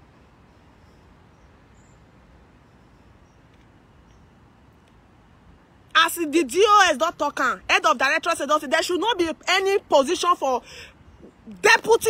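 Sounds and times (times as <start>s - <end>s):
outdoor background noise: 0.0s - 12.0s
woman's voice: 6.0s - 10.8s, 11.4s - 12.0s.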